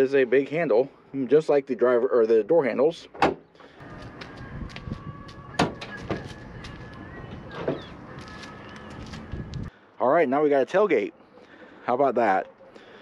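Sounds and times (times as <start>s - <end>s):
low rumble on microphone: 3.8s - 9.7s.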